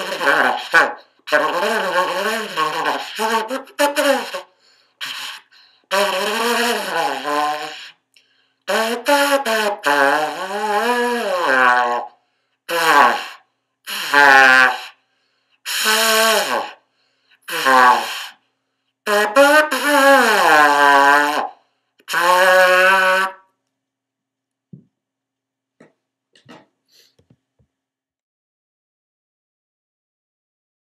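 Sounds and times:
ceramic trumpet buzzy notes: 0.0 - 8.0, 8.7 - 12.1, 12.7 - 14.9, 15.7 - 16.8, 17.4 - 18.3, 19.1 - 23.5.

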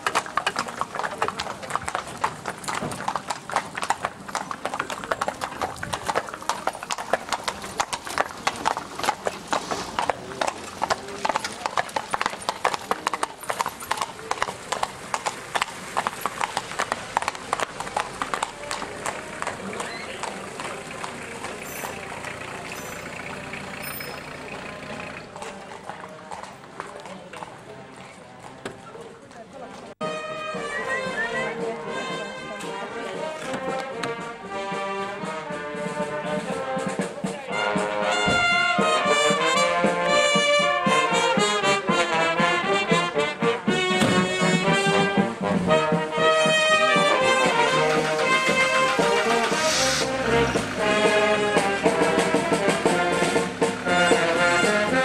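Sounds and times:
brass band with trombones: 30.0 - 55.0.

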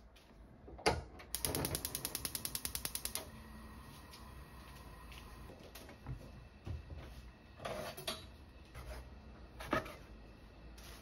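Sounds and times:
gas stove igniter clicking: 1.3 - 3.3.

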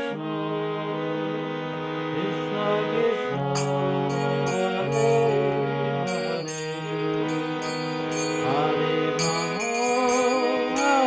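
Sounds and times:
harmonium reed notes: 0.0 - 11.0
person singing: 2.1 - 11.0.

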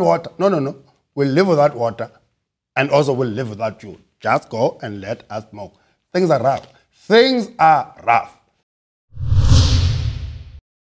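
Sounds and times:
whoosh: 9.2 - 10.6.

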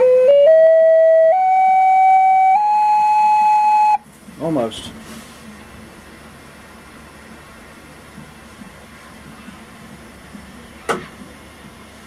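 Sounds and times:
flute notes up a scale: 0.0 - 4.0.

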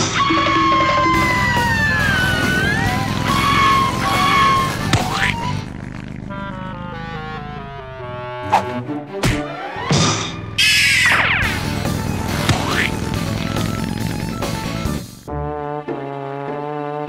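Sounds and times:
cartoon music: 0.0 - 15.0
falling run of notes: 0.0 - 15.2
motorbike engine with gliding wail: 0.0 - 15.3.

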